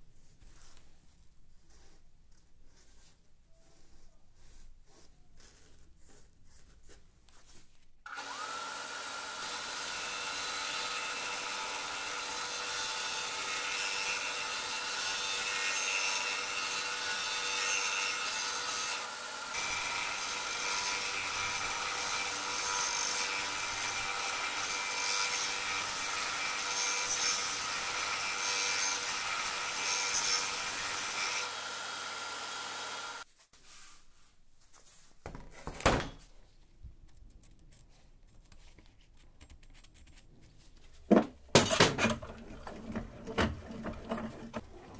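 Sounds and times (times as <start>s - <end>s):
disc sander grinding steel: 8.1s - 33.2s.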